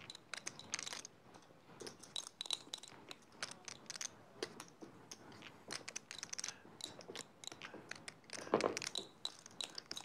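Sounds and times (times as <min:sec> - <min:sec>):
poker chips clicking: 0:00.0 - 0:01.1, 0:01.8 - 0:10.0.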